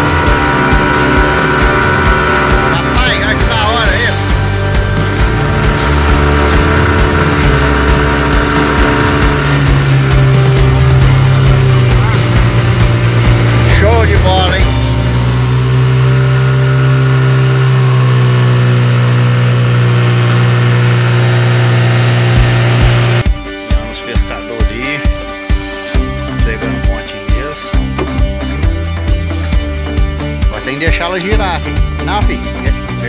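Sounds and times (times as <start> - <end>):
outboard motor droning: 0.0 - 23.4, 25.7 - 33.0.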